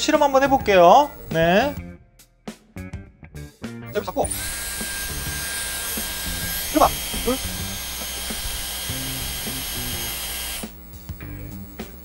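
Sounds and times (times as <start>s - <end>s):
hair styler motor whine and airflow: 4.0s - 12.0s.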